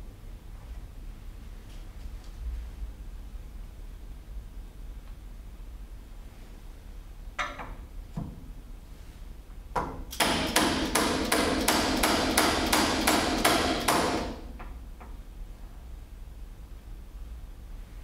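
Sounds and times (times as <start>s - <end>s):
mallet tapping metal punch: 10.2s - 14.4s.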